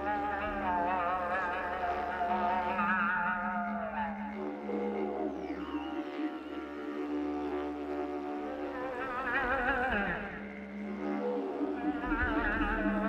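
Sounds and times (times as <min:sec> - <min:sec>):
didgeridoo drone: 0:00.0 - 0:13.0.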